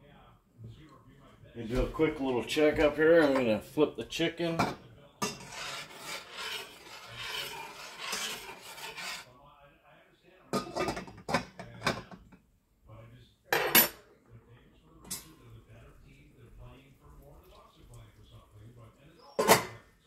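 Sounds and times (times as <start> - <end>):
scraping in a saucepan: 5.2 - 9.4, 14.6 - 20.0.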